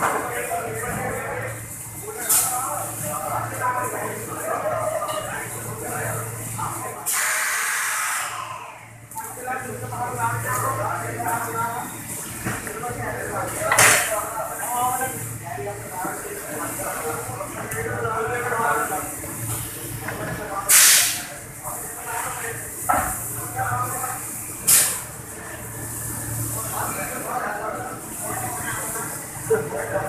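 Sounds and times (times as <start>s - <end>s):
steady background hum: 0.0s - 30.0s
loud spray hiss: 20.7s - 21.2s.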